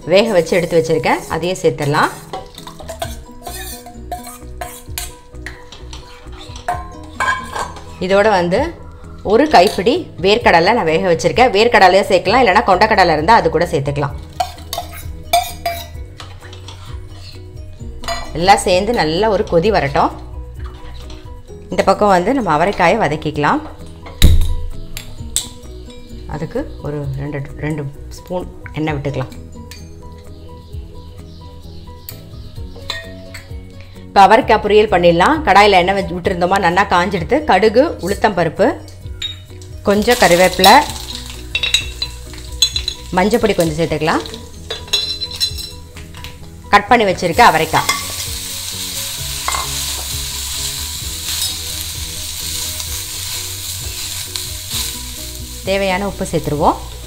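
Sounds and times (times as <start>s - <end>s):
beans sizzling in hot oil: 0.0s - 10.5s, 38.9s - 57.0s
background music: 0.0s - 57.0s
metal pan clanking on stove: 2.3s - 7.8s, 44.2s - 46.2s.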